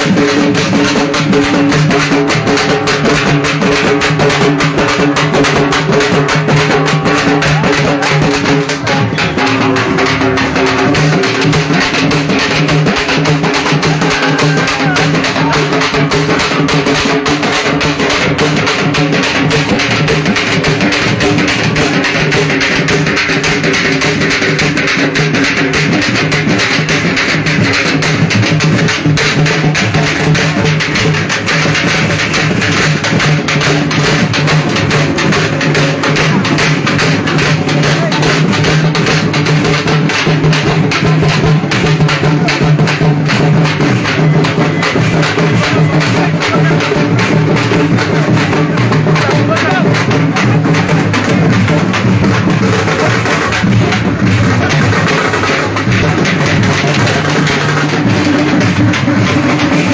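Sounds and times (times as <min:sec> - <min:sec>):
fast drumming: 0:00.0 - 0:59.9.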